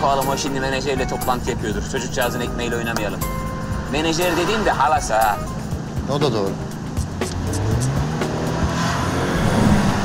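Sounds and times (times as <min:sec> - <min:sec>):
car driving past: 0:03.3 - 0:05.7, 0:07.3 - 0:10.0.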